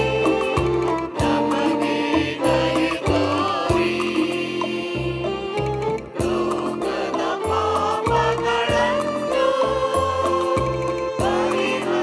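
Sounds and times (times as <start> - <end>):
choir singing a hymn: 0.0 - 12.0
musical accompaniment: 0.0 - 12.0.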